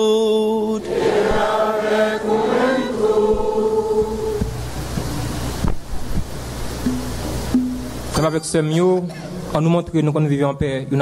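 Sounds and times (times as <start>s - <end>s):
voices singing a liturgical chant: 0.0s - 4.6s
steady wash of noise: 0.0s - 8.2s.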